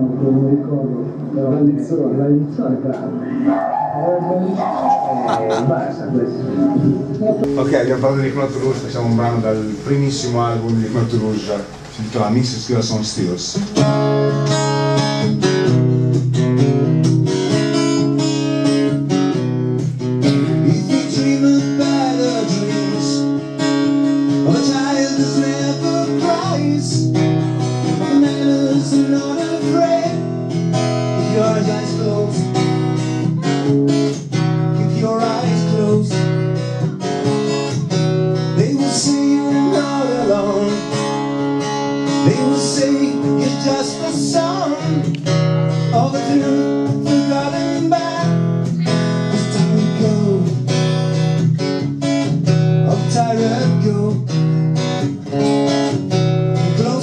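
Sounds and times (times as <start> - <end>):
strummed guitar: 0.0 - 57.0
man singing: 20.5 - 23.4, 24.3 - 27.1, 27.8 - 30.3, 30.9 - 32.6, 34.6 - 36.4, 38.6 - 41.2, 42.1 - 45.1, 45.8 - 50.7, 52.8 - 54.4, 56.7 - 57.0.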